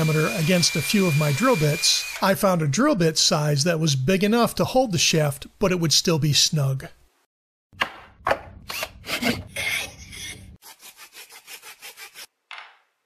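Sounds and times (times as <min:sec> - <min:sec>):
hand rubbing and scraping strokes: 0:09.0 - 0:12.3.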